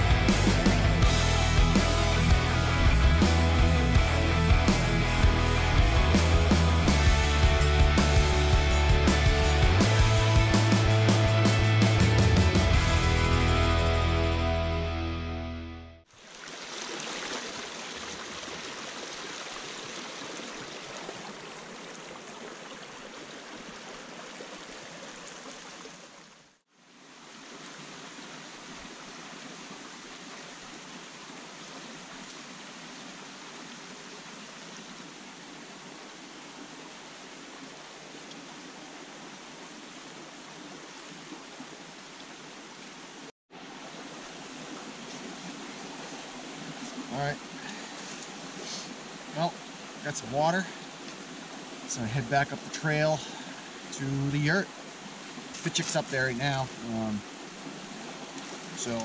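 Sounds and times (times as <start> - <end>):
water rushing over stones: 16.1 - 59.0.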